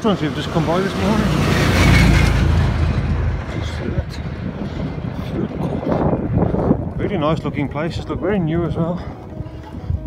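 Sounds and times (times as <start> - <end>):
heavy truck passing: 0.0 - 6.8.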